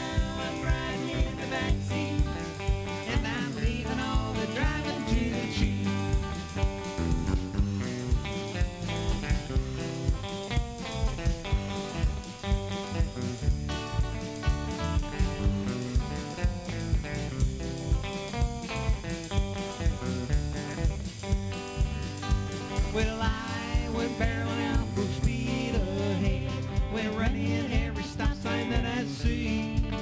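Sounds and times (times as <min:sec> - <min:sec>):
drum kit steady beat: 0:00.0 - 0:30.0
electric bass: 0:00.0 - 0:30.0
electric guitar: 0:00.0 - 0:30.0.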